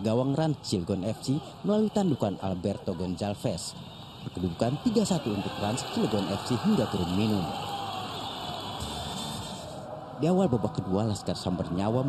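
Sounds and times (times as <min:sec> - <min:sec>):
distant stadium crowd: 0:00.0 - 0:12.0.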